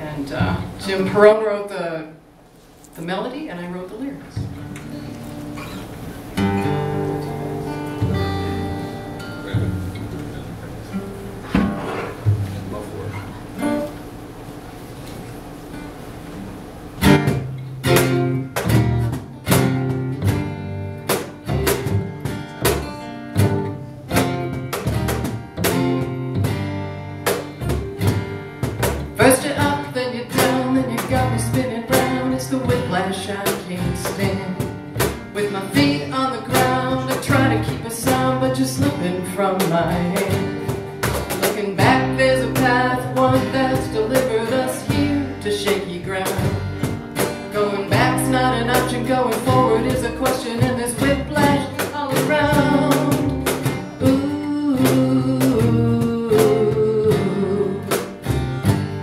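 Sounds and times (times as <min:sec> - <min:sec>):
cajon beat: 0:00.0 - 0:01.4, 0:04.1 - 0:59.0
upright bass: 0:00.0 - 0:01.4, 0:04.2 - 0:15.4, 0:17.0 - 0:59.0
strummed acoustic guitars: 0:00.0 - 0:59.0
picked guitar notes: 0:04.2 - 0:59.0.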